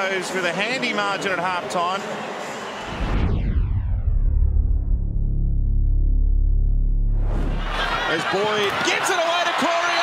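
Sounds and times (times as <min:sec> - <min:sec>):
synthesized whoosh sweeping down: 0:02.8 - 0:07.8
deep sustained bass rumble: 0:03.2 - 0:07.8.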